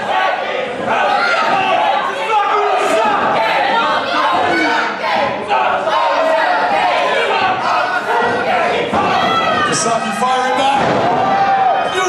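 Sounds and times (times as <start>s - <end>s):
crowd yelling and shouting: 0.0s - 12.0s.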